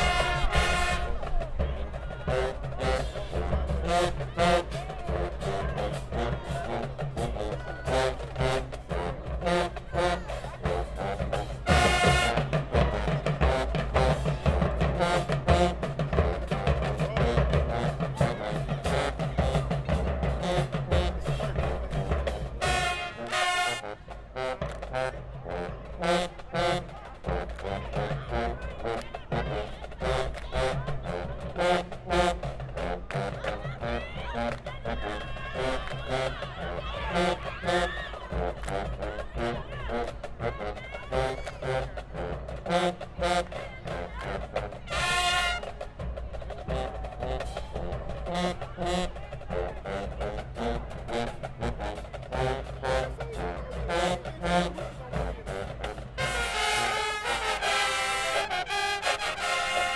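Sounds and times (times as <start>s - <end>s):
loud brass blasts: 0.0s - 1.3s, 2.2s - 19.7s, 22.4s - 33.2s, 33.8s - 45.8s, 55.6s - 59.9s
drumline steady beat: 0.0s - 59.9s
marching band playing: 0.0s - 59.9s.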